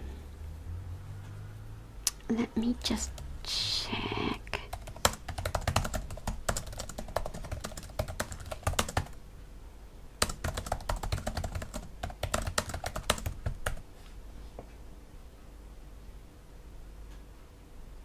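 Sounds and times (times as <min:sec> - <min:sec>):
laptop keyboard typing: 0:04.6 - 0:09.2, 0:10.2 - 0:13.9.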